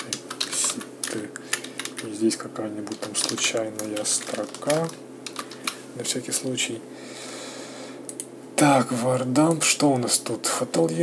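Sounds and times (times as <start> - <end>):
keyboard typing clicks: 0.0 - 2.1, 2.8 - 5.7.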